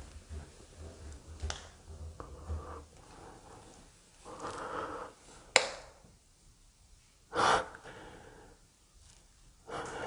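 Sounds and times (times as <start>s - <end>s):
person breathing: 2.2s - 5.6s, 7.3s - 8.8s, 9.6s - 10.0s.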